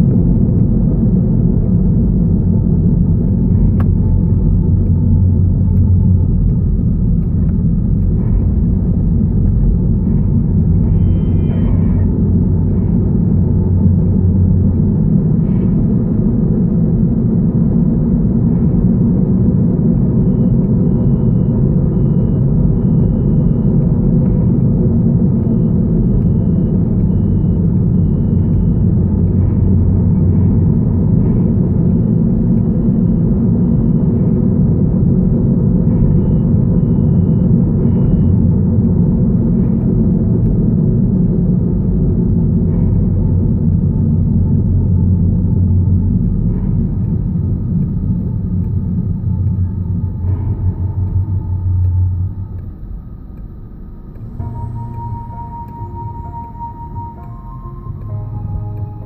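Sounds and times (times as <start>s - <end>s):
car cabin road rumble: 0.0s - 59.0s.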